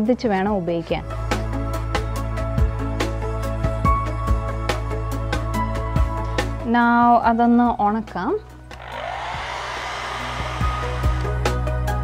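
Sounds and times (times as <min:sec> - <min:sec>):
background music with a beat: 0:01.1 - 0:06.6
hair dryer blowing: 0:08.7 - 0:11.6.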